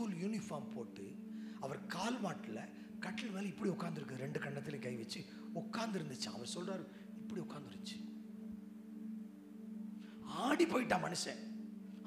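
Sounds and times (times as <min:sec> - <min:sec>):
low hum of held tones: 0:00.0 - 0:12.0.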